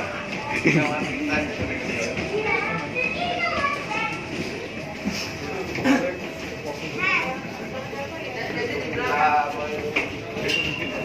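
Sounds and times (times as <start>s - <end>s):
babble of people talking: 0.0s - 11.0s.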